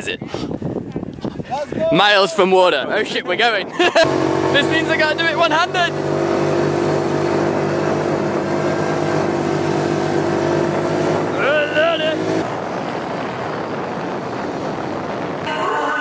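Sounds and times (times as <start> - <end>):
rushing wind noise: 0.0 - 16.0.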